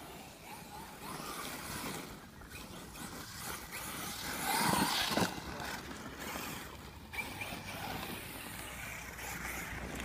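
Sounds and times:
radio-controlled car motor whine: 0:00.0 - 0:10.0.

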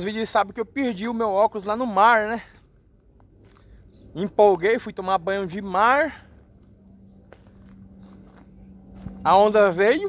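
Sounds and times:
low hum: 0:02.6 - 0:10.0.

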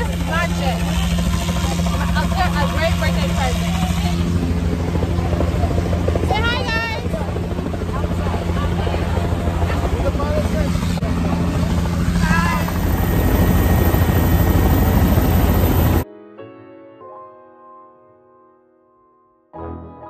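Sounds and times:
helicopter rotor and engine drone: 0:00.0 - 0:16.0
rushing wind: 0:00.1 - 0:16.0.

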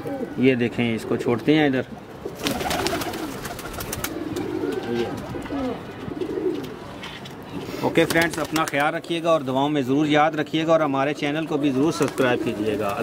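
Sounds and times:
pigeons cooing: 0:00.0 - 0:01.4, 0:02.0 - 0:07.0, 0:11.8 - 0:13.0.

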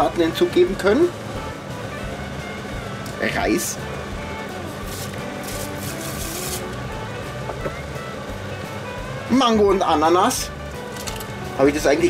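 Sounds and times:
background music: 0:00.0 - 0:12.0
rice grains pouring into pot: 0:04.8 - 0:06.7.

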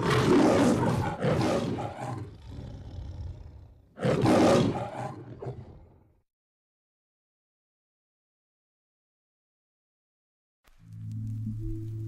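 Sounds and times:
lion roaring: 0:00.0 - 0:06.1.

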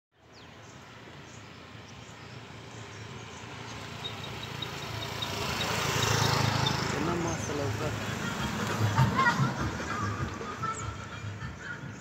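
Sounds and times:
vehicle engine idling: 0:01.0 - 0:12.0.

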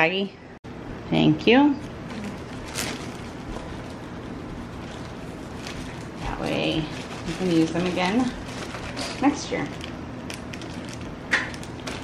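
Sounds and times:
plastic bag rustling and crinkling: 0:02.0 - 0:12.0.

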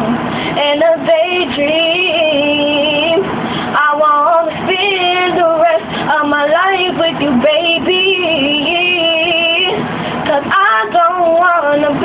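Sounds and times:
girl singing a slow love song: 0:00.0 - 0:12.0.

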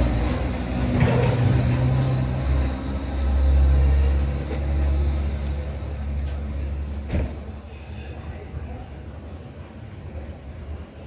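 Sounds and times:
heavy vehicle engine rumbling: 0:00.0 - 0:11.0.

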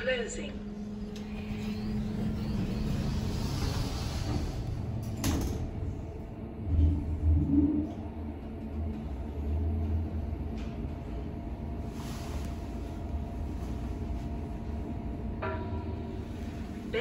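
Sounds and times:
faint hum: 0:00.0 - 0:17.0
lift low rumble: 0:00.0 - 0:17.0.

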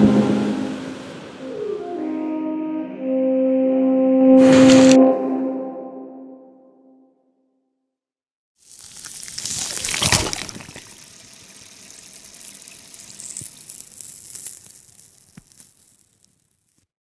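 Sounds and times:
rush of water-like noise: 0:08.6 - 0:13.7.

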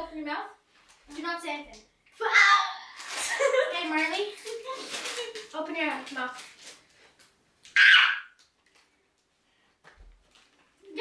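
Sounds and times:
faint clicks and rustles: 0:03.0 - 0:07.8, 0:08.4 - 0:11.0
girl squealing: 0:07.7 - 0:08.4.

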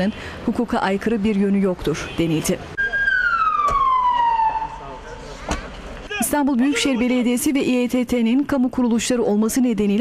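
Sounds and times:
siren falling in pitch: 0:02.8 - 0:05.0.

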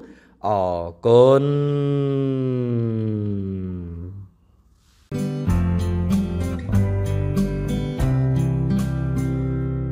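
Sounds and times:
man chanting a long syllable: 0:00.4 - 0:04.3.

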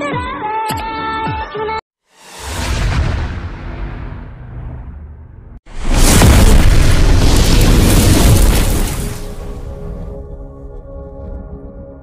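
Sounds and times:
cinematic boom with deep rumble: 0:02.3 - 0:10.3.

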